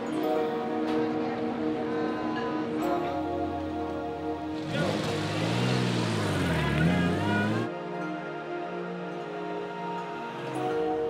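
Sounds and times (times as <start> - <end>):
background music: 0.0 - 11.0
sports car driving off: 4.5 - 7.7.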